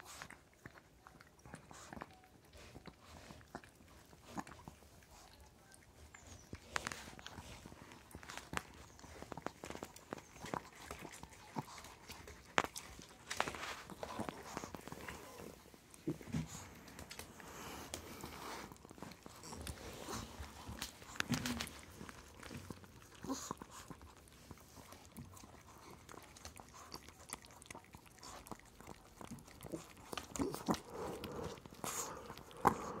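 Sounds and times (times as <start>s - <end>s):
dog licking: 0.0s - 33.0s.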